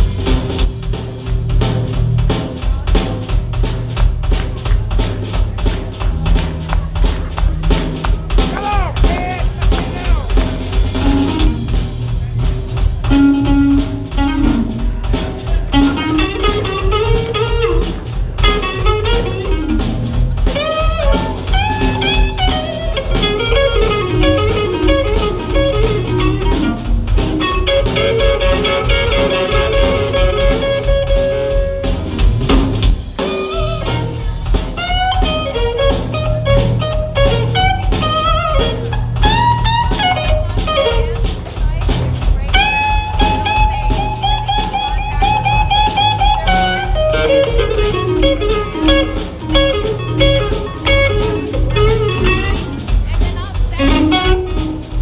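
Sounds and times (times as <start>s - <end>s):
blues band playing: 0.0s - 55.0s
electric guitar lead lines: 13.0s - 41.3s, 42.5s - 55.0s.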